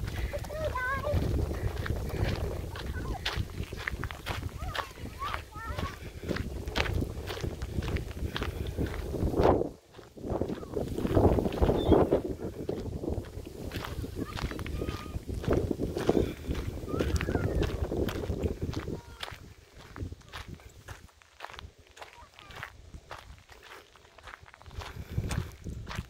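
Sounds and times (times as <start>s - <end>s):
wind rumbling on microphone: 0.0s - 21.8s, 22.4s - 26.0s
footsteps on gravel: 0.0s - 26.0s
distant children calling: 0.1s - 6.5s, 13.9s - 17.9s.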